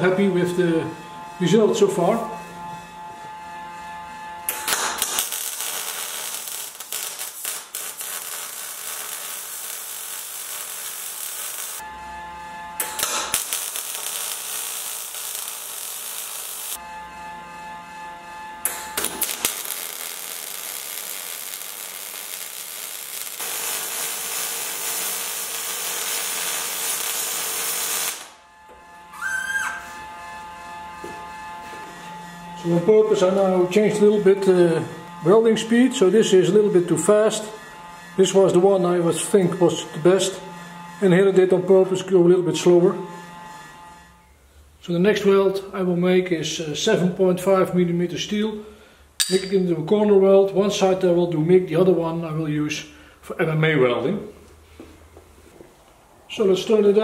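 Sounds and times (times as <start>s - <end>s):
welding arc crackling hiss: 4.5s - 11.8s, 12.8s - 16.8s, 18.7s - 28.4s.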